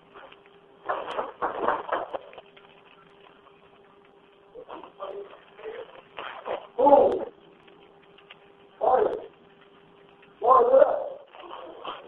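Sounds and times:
faint phone line hum: 2.0s - 6.2s.

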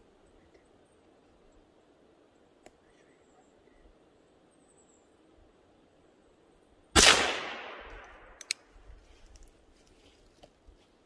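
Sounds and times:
gunshot: 7.0s - 8.2s.

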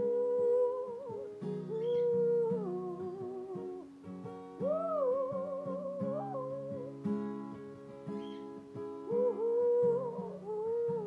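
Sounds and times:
woman humming: 0.0s - 3.9s, 4.6s - 7.1s, 9.0s - 11.0s
acoustic guitar: 0.0s - 11.0s.

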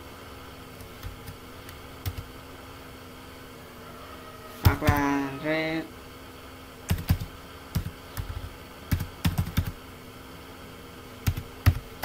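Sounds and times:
computer keyboard typing: 0.8s - 2.3s, 4.6s - 5.1s, 6.9s - 9.8s, 11.2s - 12.0s.

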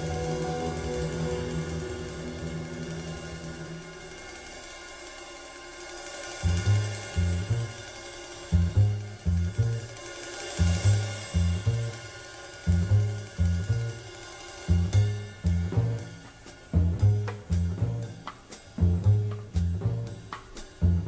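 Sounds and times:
faint cymbals: 0.0s - 21.0s
plucked double bass: 6.4s - 7.8s, 8.5s - 10.0s, 10.6s - 12.0s, 12.7s - 14.0s, 14.7s - 21.0s.

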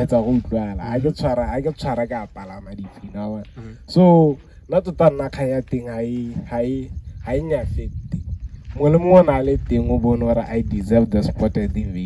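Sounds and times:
low rumble: 0.0s - 12.0s
man speaking into a microphone: 0.0s - 12.0s.

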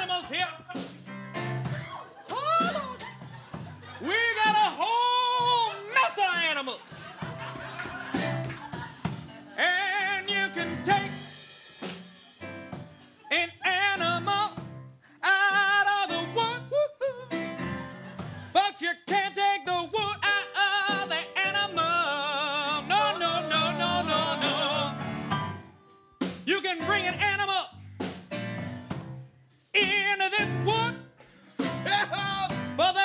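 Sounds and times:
band accompaniment with bass line: 0.0s - 33.0s
person singing with vibrato: 3.9s - 6.0s, 9.4s - 11.5s, 13.2s - 17.8s, 18.5s - 25.3s, 29.8s - 33.0s.

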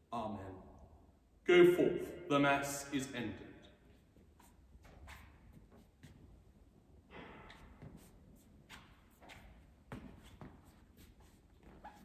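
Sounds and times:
soft footsteps: 3.8s - 12.0s.

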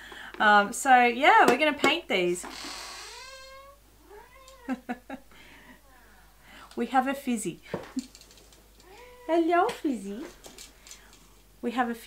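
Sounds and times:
cat meowing: 3.0s - 4.8s, 8.8s - 9.5s.

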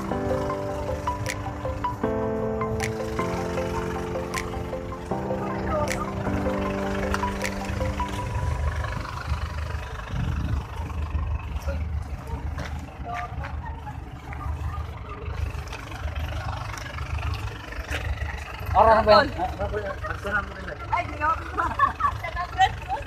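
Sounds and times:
background music: 0.0s - 9.4s
outdoor rumble with vehicles: 0.0s - 23.0s.

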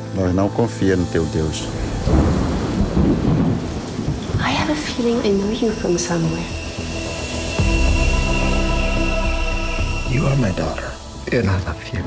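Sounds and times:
loud deep rumble: 1.6s - 11.3s.

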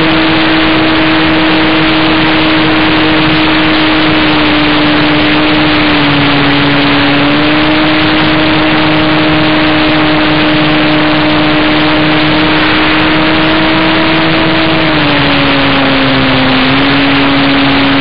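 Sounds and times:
model plane motor humming: 0.0s - 18.0s
wind rush on microphone: 0.0s - 18.0s.

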